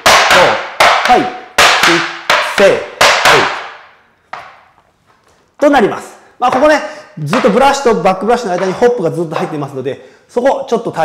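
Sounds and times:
tap shoes striking wooden board: 0.0s - 4.7s, 6.4s - 7.8s, 8.5s - 9.6s.

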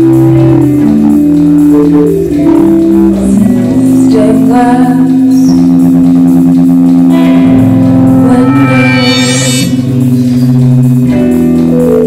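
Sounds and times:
low electronic chord: 0.0s - 12.0s
bright high shimmer: 8.2s - 10.0s.

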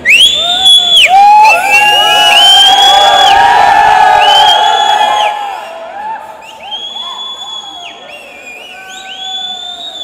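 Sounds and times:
crowd cheering and screaming: 0.0s - 10.0s.

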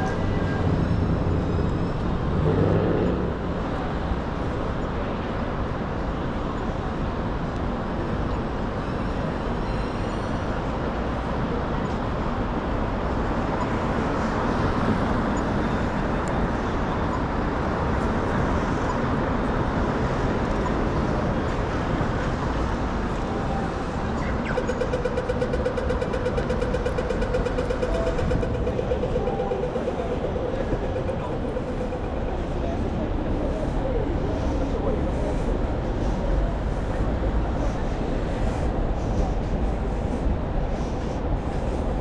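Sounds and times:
traffic hum: 0.0s - 42.0s
crossing signal electronic ticking: 24.1s - 32.7s
passing voices: 26.0s - 38.1s.

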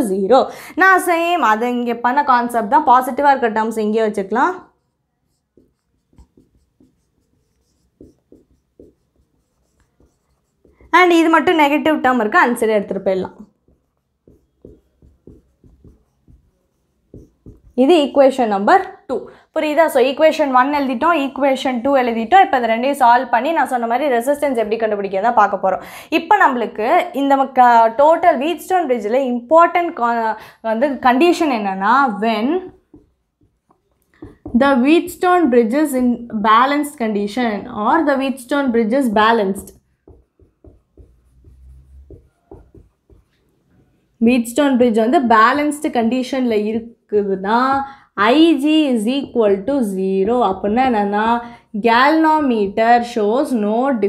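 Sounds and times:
marker pen writing on whiteboard: 3.0s - 18.3s, 31.2s - 36.3s, 38.0s - 44.0s, 44.6s - 46.1s, 47.4s - 51.4s.

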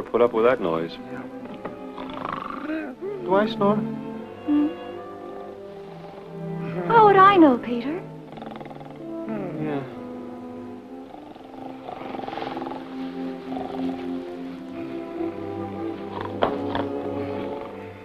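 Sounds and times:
orchestral film music: 0.0s - 18.0s
man snoring: 1.9s - 3.0s, 8.2s - 14.2s, 16.2s - 18.0s.

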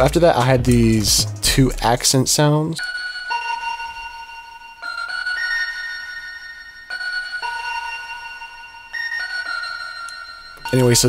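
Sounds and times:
bell and celesta melody: 2.8s - 11.0s.

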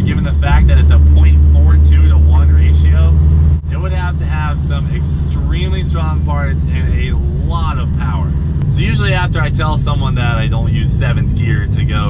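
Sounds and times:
car engine cabin drone: 0.0s - 12.0s.

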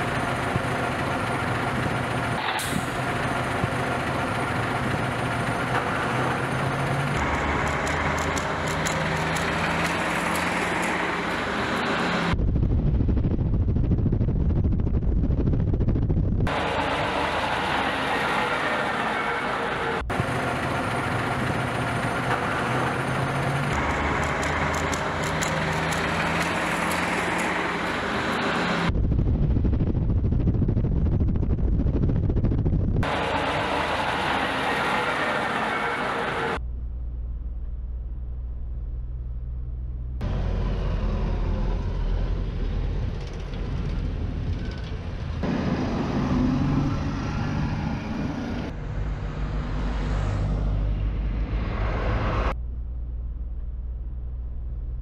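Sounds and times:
truck engine idling: 0.0s - 12.2s, 16.5s - 28.7s
deep rumble of vehicle moving: 0.0s - 55.0s.

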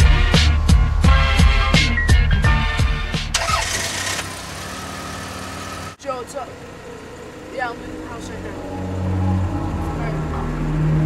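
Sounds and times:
hip-hop music: 0.0s - 3.4s
car engine starting and idling: 0.0s - 11.0s.

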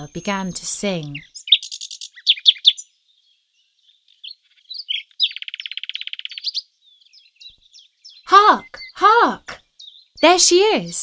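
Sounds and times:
songbird chirping and trilling: 0.0s - 11.0s.

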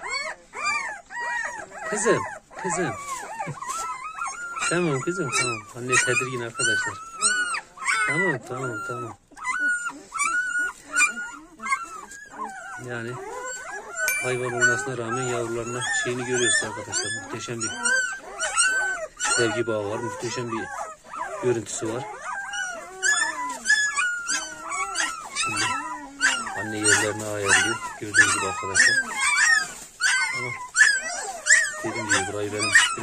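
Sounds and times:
dog whining: 0.0s - 33.0s
puppies whimpering: 0.0s - 33.0s.

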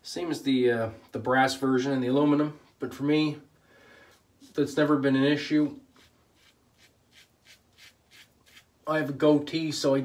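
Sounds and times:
safety razor scraping stubble: 5.9s - 8.7s.

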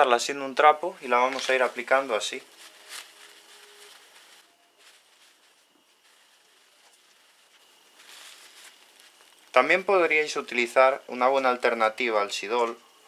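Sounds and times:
cloth rubbing on metal: 1.0s - 9.2s.

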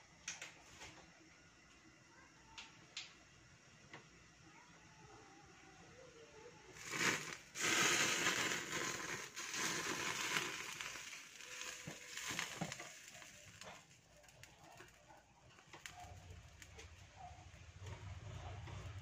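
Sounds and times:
pot of soup simmering: 6.8s - 19.0s.

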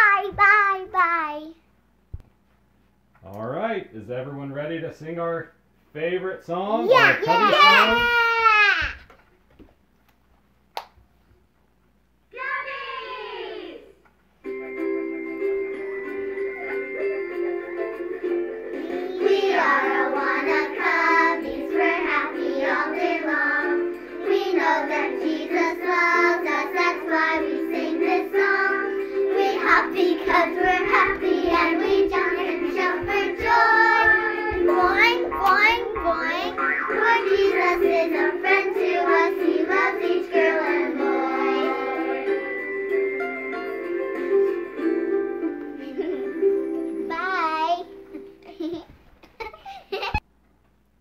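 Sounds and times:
music accompaniment: 14.4s - 48.4s
children singing: 18.8s - 42.6s.

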